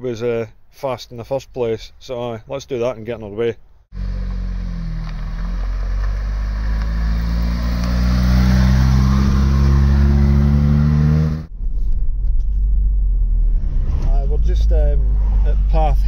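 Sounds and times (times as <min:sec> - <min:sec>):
road noise inside car: 0:03.8 - 0:16.0
car engine pulling away: 0:03.9 - 0:11.5.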